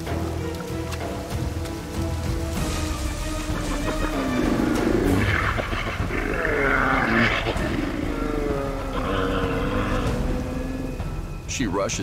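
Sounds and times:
river water rushing: 0.0s - 11.5s
bears growling and moaning: 2.7s - 11.4s.

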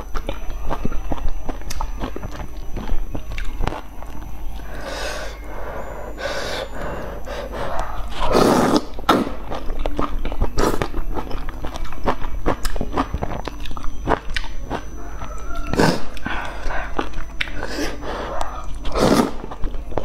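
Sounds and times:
wet chewing with mouth clicks: 0.0s - 4.8s, 6.7s - 20.0s
slurping noodles: 7.3s - 9.2s, 18.9s - 19.4s.

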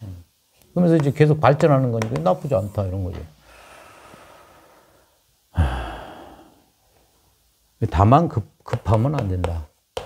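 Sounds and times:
man sighing: 5.5s - 6.7s.

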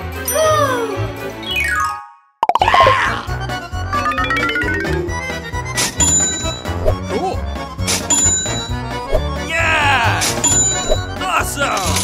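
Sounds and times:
upbeat background music: 2.4s - 12.0s
rising and falling chime tone: 3.8s - 6.8s.

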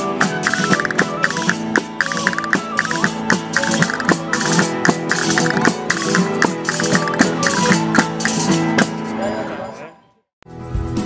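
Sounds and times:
frame drums with jingles: 0.0s - 9.6s
guitar: 0.0s - 9.9s, 10.5s - 11.0s
violins: 0.0s - 10.0s
wind instrument: 0.0s - 10.0s.

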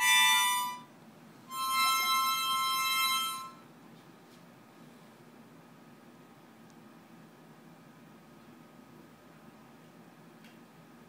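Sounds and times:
harmonica chord: 0.0s - 0.9s, 1.5s - 3.6s.

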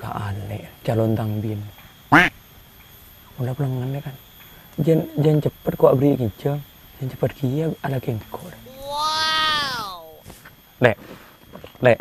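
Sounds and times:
man holding a drawn-out vowel: 8.7s - 10.2s
squawk-like cry: 8.7s - 10.2s.

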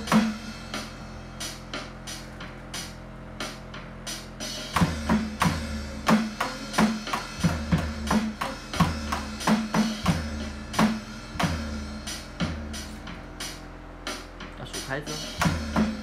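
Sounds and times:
backing music track: 0.0s - 16.0s
electronic drum kit playing: 0.0s - 16.0s.

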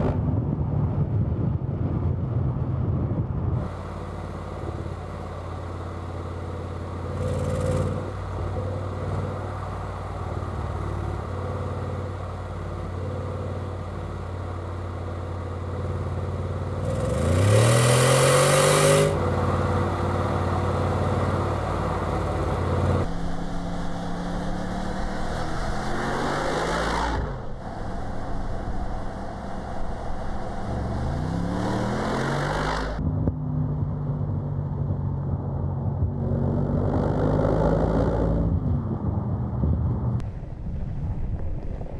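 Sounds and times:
low engine drone: 0.0s - 41.9s
engine revving: 3.6s - 40.2s.

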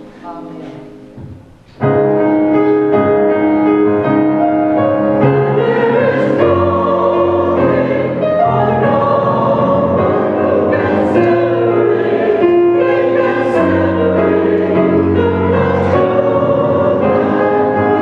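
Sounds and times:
mixed choir singing in parts: 4.6s - 18.0s.

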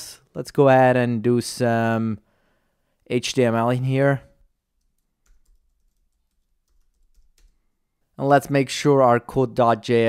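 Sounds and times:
faint keyboard typing: 4.7s - 7.8s.

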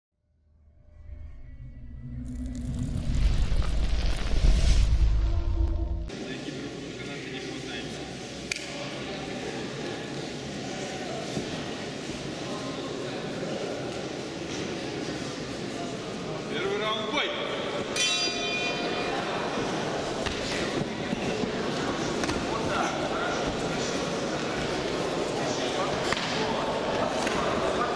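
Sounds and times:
rumbling whoosh of flames: 2.2s - 6.1s
boxing ring bell ringing: 18.0s - 19.3s.

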